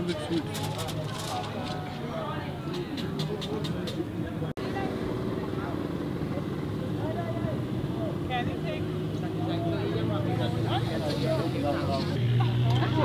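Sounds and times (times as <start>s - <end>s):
people's voices: 0.0s - 13.0s.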